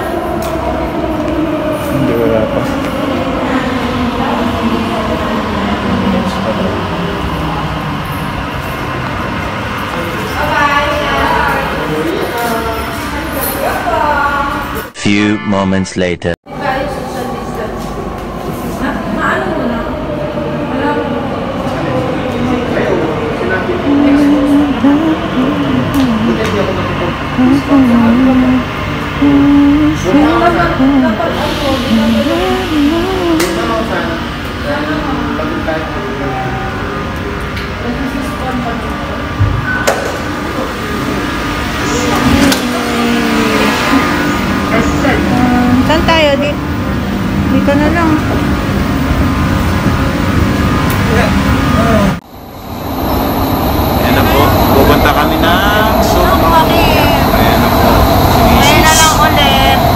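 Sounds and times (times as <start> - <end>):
people's voices: 0.0 - 52.2, 53.9 - 59.9
train rumbling with hiss: 16.6 - 59.9.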